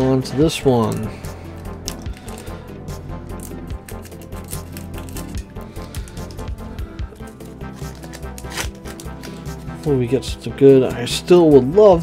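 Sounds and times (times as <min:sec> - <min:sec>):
background music: 0:00.0 - 0:12.0
foil wrapper crinkling and tearing: 0:01.8 - 0:02.6, 0:03.3 - 0:09.6.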